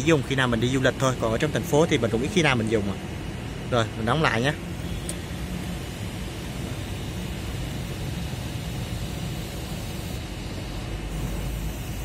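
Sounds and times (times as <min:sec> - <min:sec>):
steady background hiss: 0:00.0 - 0:12.0
sunroof motor running: 0:04.5 - 0:12.0.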